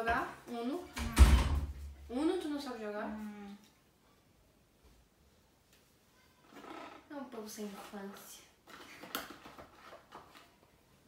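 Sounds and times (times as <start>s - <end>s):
girl speaking: 0.0s - 1.0s, 2.1s - 3.6s, 7.1s - 8.6s.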